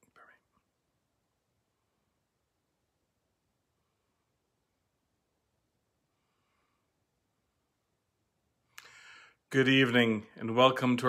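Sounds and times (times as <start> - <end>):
faint breath: 6.1 - 7.1, 8.7 - 9.5.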